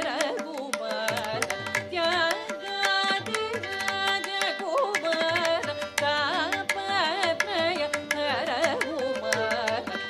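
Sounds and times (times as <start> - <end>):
woman singing: 0.0 - 10.0
tanpura drone: 1.2 - 10.0.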